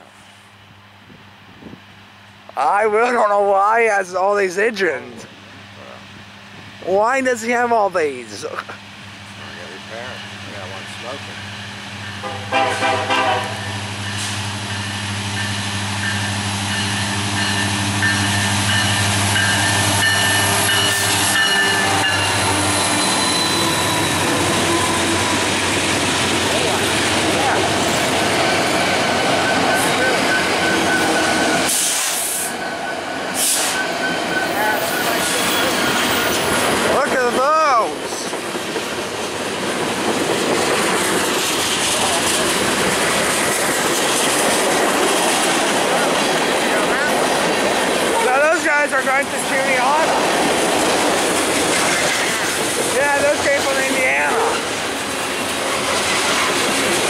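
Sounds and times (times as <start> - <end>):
diesel locomotives droning: 0.0 - 57.0.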